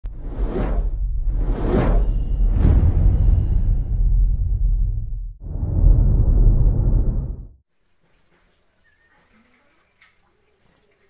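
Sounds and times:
steady deep rumble: 0:00.0 - 0:07.6.

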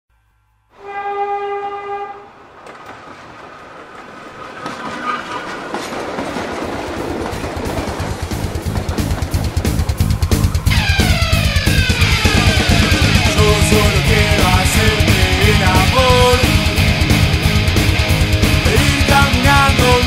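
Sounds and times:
train horn: 0:00.7 - 0:02.4
train clattering on rails: 0:00.8 - 0:20.0.

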